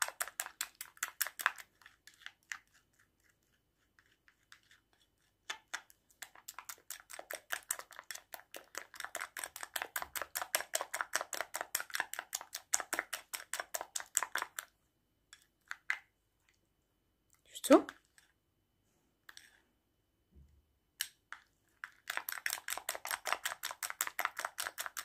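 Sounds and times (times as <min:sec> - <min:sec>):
spoon scraping paste in bowl: 0:00.0 - 0:14.7, 0:15.3 - 0:16.1, 0:17.8 - 0:18.4, 0:19.2 - 0:19.6, 0:21.0 - 0:25.0.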